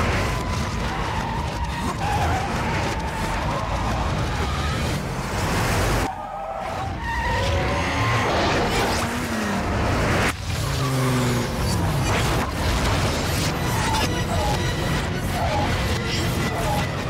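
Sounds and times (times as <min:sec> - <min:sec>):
tyres skidding: 0:00.0 - 0:17.0
engines revving hard: 0:06.7 - 0:17.0.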